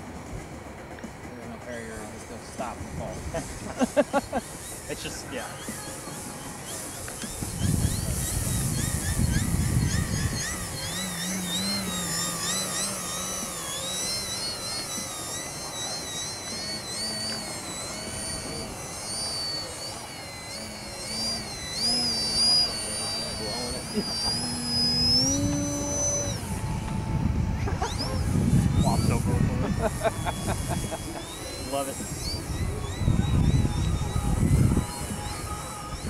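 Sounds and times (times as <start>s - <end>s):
model airplane motor whine: 0.0s - 36.0s.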